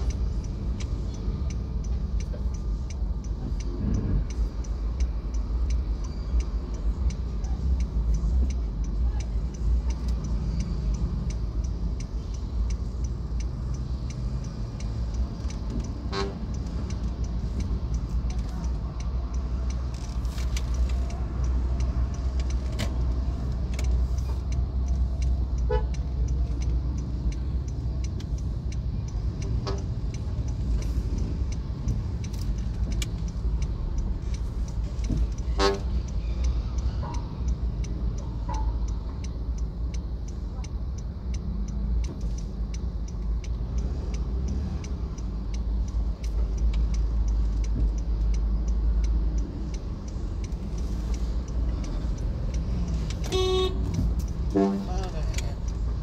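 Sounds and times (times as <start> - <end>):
engine and road rumble: 0.0 - 56.0
vehicle horn toots: 53.3 - 53.8, 54.5 - 54.9.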